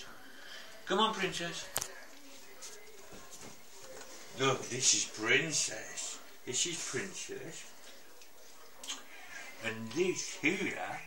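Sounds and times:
faint soft taps and rustles: 1.8s - 4.2s.

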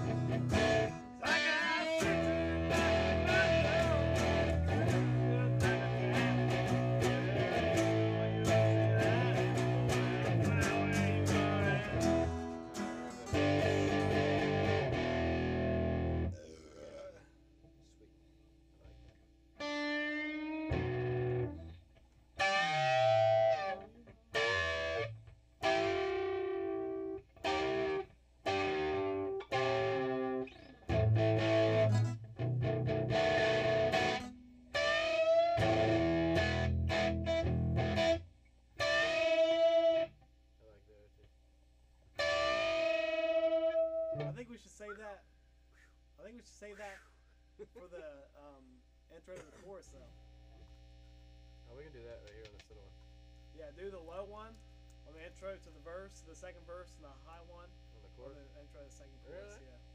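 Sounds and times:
distorted electric guitar: 0.0s - 17.2s, 18.8s - 40.2s, 42.2s - 44.5s.

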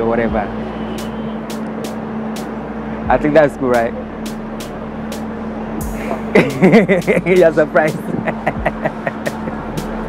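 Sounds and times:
sharp hissy ticks: 0.9s - 2.7s, 3.7s - 10.0s.

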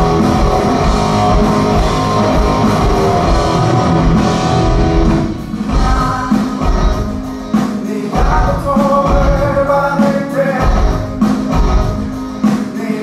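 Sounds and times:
drum kit: 0.0s - 13.0s
electric guitar: 0.0s - 13.0s.

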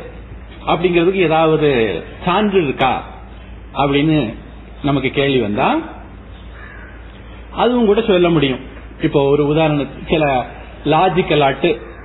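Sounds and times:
low steady hum: 0.0s - 12.0s
man speaking: 0.6s - 6.0s, 7.6s - 12.0s.

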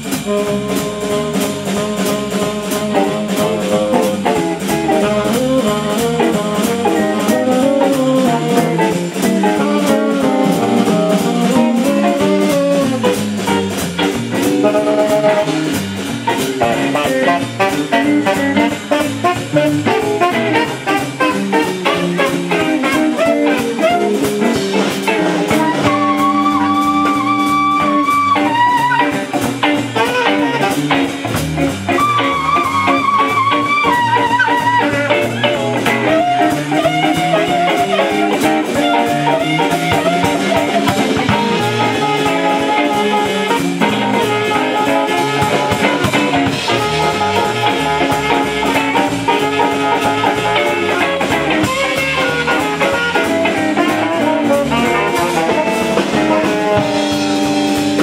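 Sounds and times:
drum kit: 0.0s - 58.0s
electric bass: 0.0s - 58.0s
electric guitar: 0.0s - 58.0s
tenor saxophone: 0.0s - 58.0s.

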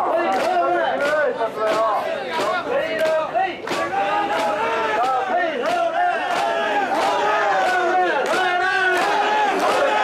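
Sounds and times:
crowd shouting a chant: 0.0s - 10.0s.

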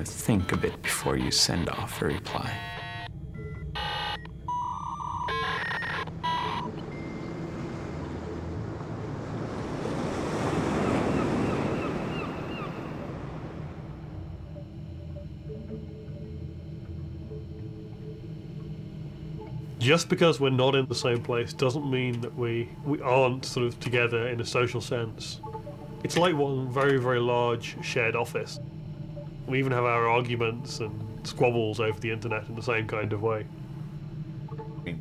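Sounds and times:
sea surf rushing: 6.1s - 14.6s.

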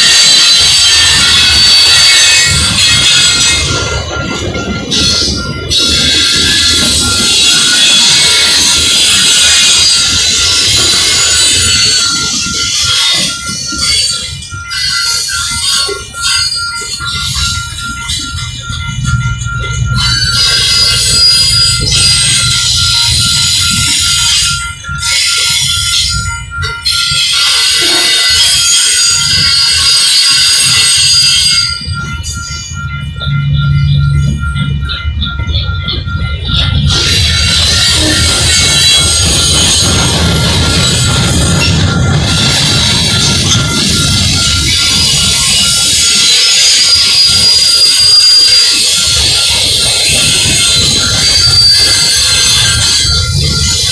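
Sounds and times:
crossing bell ringing: 0.0s - 53.9s
freight train wheels rumbling: 0.0s - 53.9s.

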